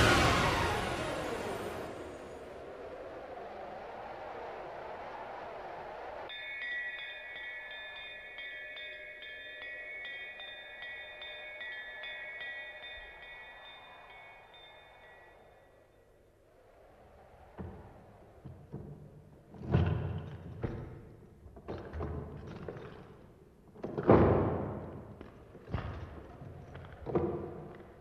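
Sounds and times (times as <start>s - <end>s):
whooshing wind-like noise: 0.0s - 8.6s, 16.2s - 19.8s
wind chimes tinkling: 6.3s - 16.3s.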